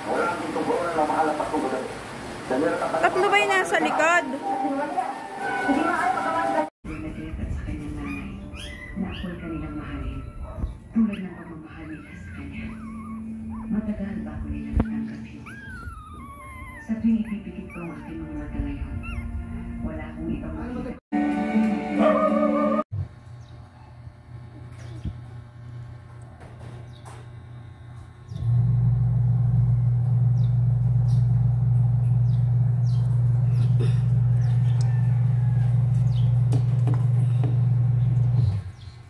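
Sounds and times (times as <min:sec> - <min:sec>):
puppy whining: 0:08.0 - 0:19.9
low mechanical hum: 0:23.0 - 0:39.0.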